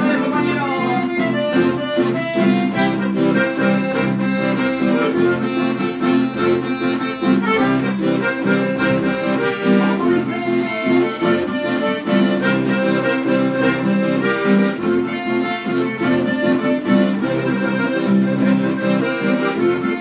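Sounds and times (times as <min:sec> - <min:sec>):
accordion playing: 0:00.0 - 0:20.0
acoustic guitars strumming: 0:00.0 - 0:20.0.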